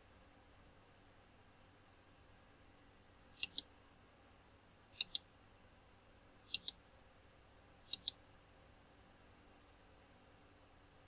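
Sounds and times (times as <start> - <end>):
computer mouse button clicks: 5.0 - 5.2, 7.9 - 8.2.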